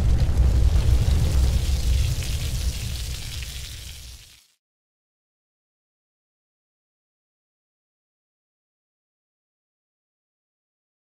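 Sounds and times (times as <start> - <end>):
boom tail: 0.0 - 4.2
deep rumble with crackling: 0.0 - 4.3.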